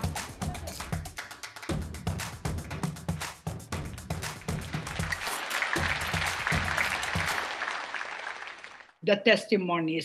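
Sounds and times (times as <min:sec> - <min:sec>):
audience applauding: 0:00.0 - 0:02.3, 0:04.1 - 0:09.0.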